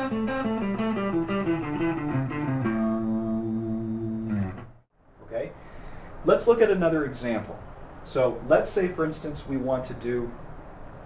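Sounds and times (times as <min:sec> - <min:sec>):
electric guitar held low note: 0:00.0 - 0:04.8.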